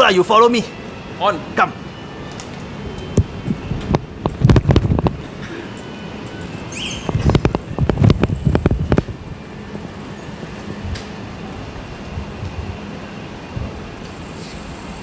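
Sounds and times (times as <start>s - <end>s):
outdoor background hiss: 0.0s - 15.0s.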